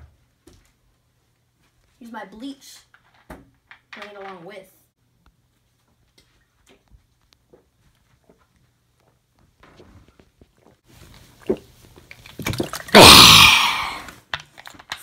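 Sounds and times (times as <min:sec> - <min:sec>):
liquid sloshing in a bottle: 0:10.6 - 0:13.0
person swallowing: 0:12.6 - 0:14.1
person gasping ah: 0:13.0 - 0:14.1.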